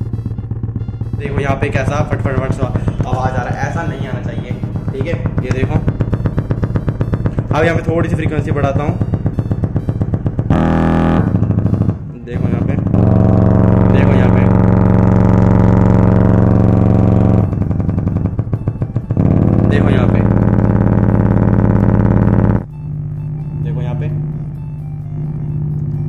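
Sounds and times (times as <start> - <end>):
distorted buzzing flutter: 0.0 - 26.0
low hum: 0.0 - 26.0
woofer playing low test tones: 0.0 - 26.0.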